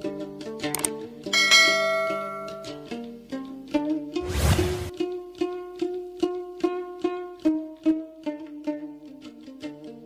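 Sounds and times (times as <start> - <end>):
plucked-string background music: 0.0 - 10.0
bell chime: 1.3 - 2.8.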